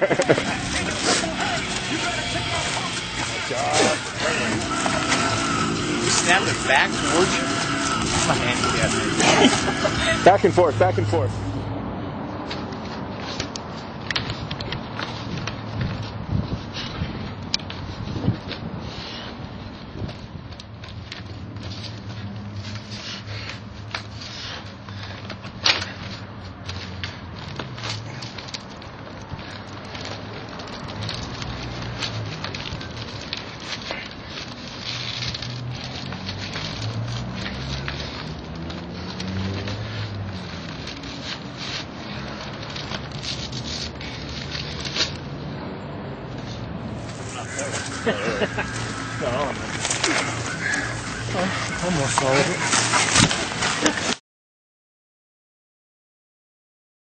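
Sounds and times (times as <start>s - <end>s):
paper crackling and tearing: 0.0s - 11.2s, 26.7s - 45.2s, 46.4s - 54.2s
paper snapping: 47.1s - 54.2s.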